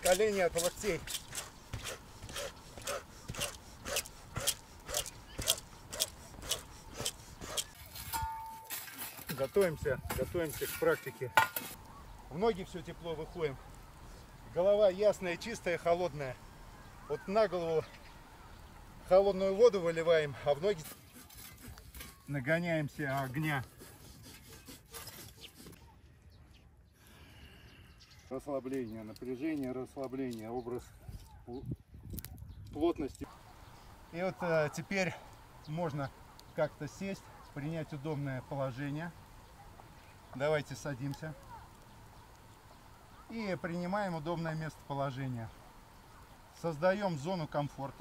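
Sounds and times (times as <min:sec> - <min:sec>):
rapid forced breathing: 0:00.0 - 0:07.8
shovel scraping among logs and stones: 0:00.0 - 0:11.8, 0:20.4 - 0:25.8
faint bird chirps: 0:15.4 - 0:19.1, 0:25.4 - 0:29.6.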